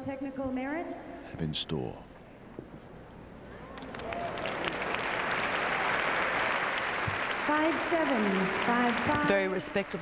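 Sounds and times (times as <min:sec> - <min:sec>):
audience applauding: 0:03.6 - 0:10.0.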